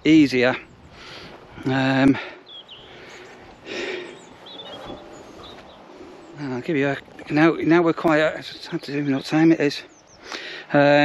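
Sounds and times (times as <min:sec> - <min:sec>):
high bird chirps: 0:02.4 - 0:07.5.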